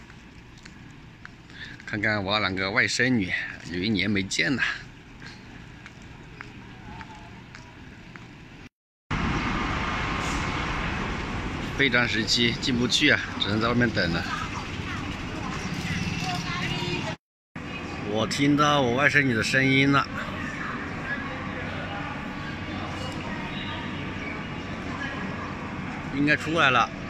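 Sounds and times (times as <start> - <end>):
railway station din with rumble: 0.0 - 27.0.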